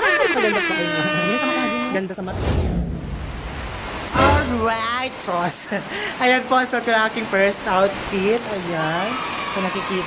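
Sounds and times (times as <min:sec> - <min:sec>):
loud horn-like tone: 0:00.0 - 0:02.1
person speaking: 0:04.1 - 0:05.6.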